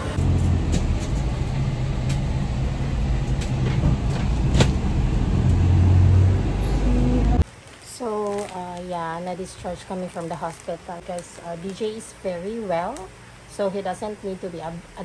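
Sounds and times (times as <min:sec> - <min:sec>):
engine and road rumble: 0:00.0 - 0:07.5.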